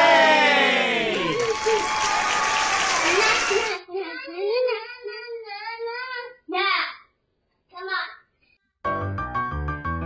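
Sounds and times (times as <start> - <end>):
applause: 0.0 - 3.8
child's voice: 3.0 - 7.1, 7.7 - 8.3.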